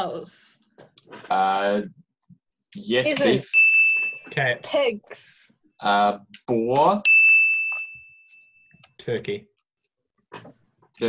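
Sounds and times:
bell ding: 3.4s - 4.6s, 7.0s - 8.8s.

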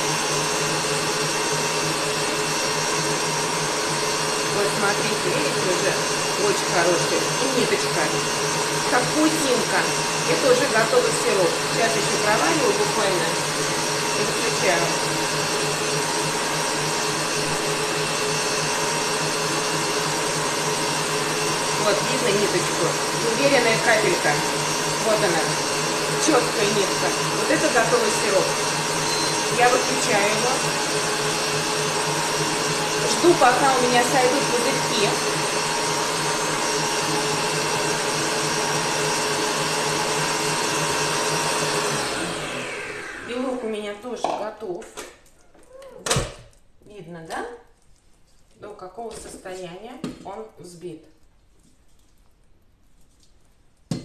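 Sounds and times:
stand mixer whisking: 0.0s - 44.4s.

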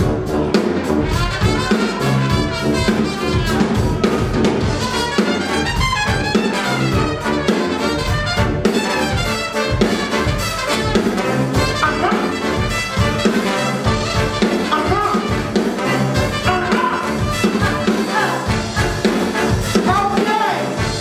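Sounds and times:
brass band playing: 0.0s - 21.0s
drum kit beat: 0.0s - 21.0s.

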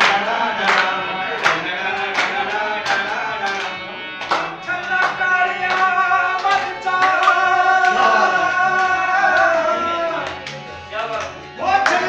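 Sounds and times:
man singing: 0.0s - 10.3s, 10.9s - 12.0s
harmonium drone: 0.0s - 12.0s.

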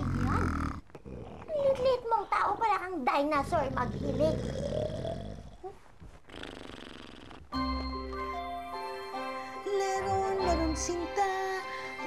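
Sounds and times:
man snoring: 3.7s - 5.6s, 6.3s - 7.4s.

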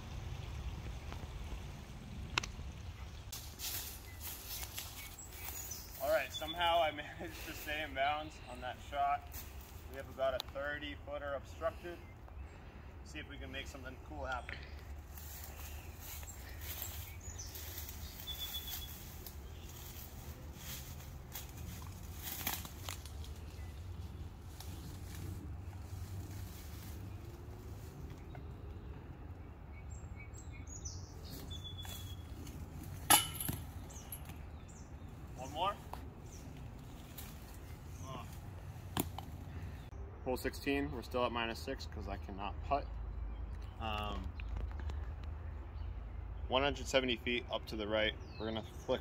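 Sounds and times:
short bird chirps: 18.2s - 19.0s.

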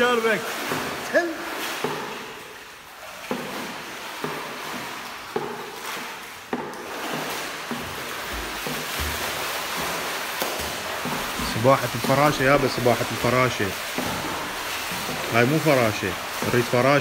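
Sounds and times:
pool water splashing: 0.0s - 17.0s.

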